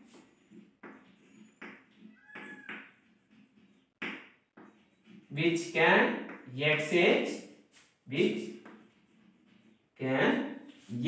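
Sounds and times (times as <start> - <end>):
chalk scraping on blackboard: 0.0 - 3.9, 6.9 - 10.0, 10.7 - 11.0.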